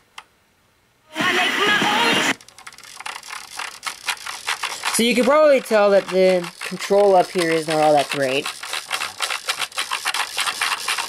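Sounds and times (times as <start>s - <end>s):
radio static hiss: 1.1s - 2.4s
radio tuning dial clicking: 1.2s - 11.0s.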